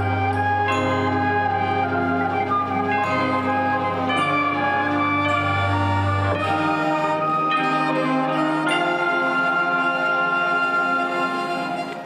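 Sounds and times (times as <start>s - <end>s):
marching band playing held chords: 0.0s - 12.0s.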